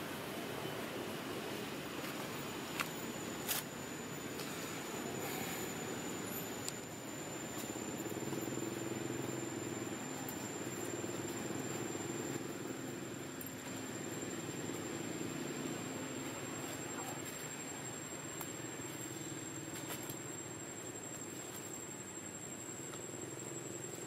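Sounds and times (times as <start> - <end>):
distant motor drone: 0.0 - 24.0
high steady whine: 0.0 - 24.0
outdoor background hiss: 0.0 - 24.0.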